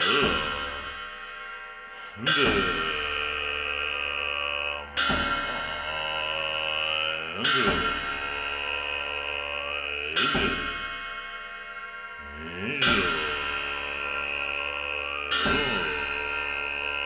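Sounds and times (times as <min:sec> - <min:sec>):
large cymbals crashing: 0:00.0 - 0:17.0.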